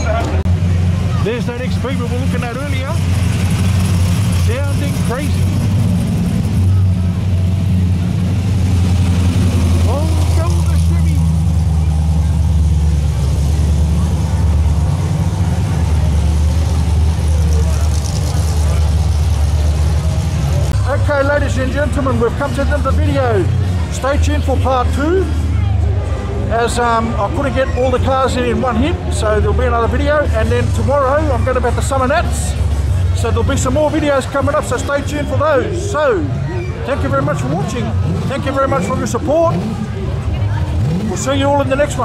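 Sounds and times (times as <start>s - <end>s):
car engine rumbling past: 0.0s - 42.0s
people's voices: 0.0s - 42.0s.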